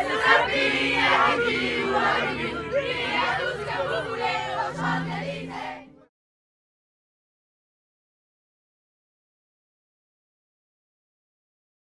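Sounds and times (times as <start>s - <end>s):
crowd cheering and chanting: 0.0s - 6.1s.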